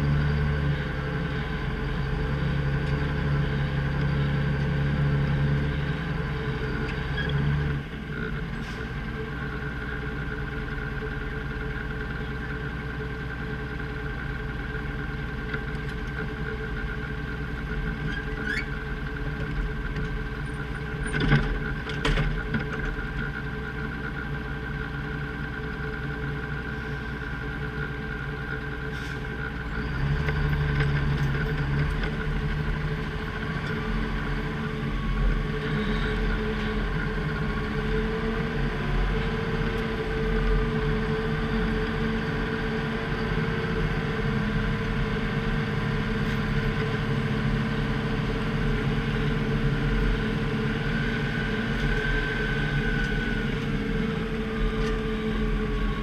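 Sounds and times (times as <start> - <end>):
truck engine running: 0.0 - 56.0.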